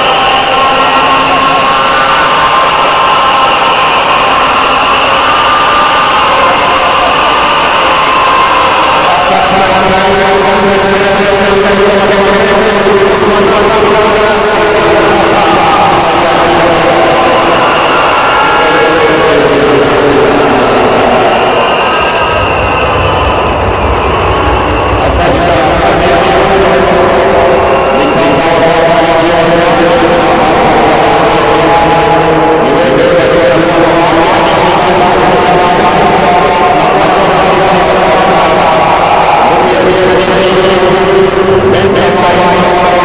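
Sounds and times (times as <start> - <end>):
stadium crowd noise: 0.0 - 43.0.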